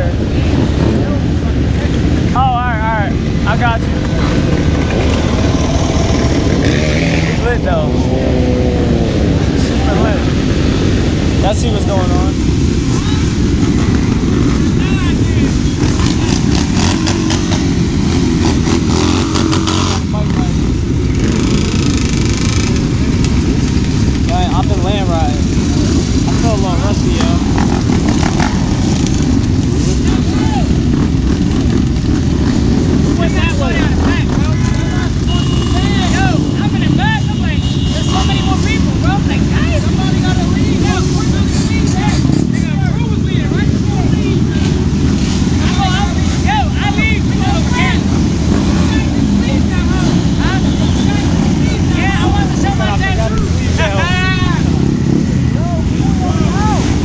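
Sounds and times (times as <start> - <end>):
dirt bike engines revving: 0.0 - 57.0.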